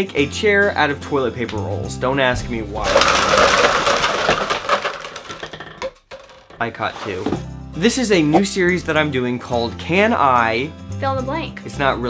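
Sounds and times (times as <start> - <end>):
cardboard rolls clattering down: 2.2 - 7.6.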